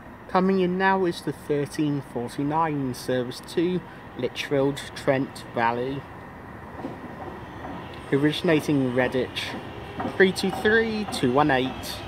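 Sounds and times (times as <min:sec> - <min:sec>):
electric train approaching: 0:02.4 - 0:12.0.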